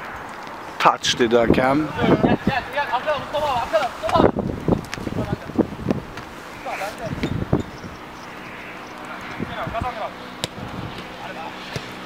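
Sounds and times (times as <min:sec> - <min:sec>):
players shouting: 0:01.2 - 0:04.4.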